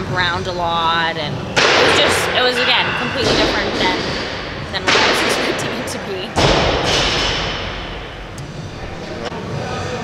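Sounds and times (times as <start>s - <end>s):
bang echoing in a large hall: 1.4s - 9.6s.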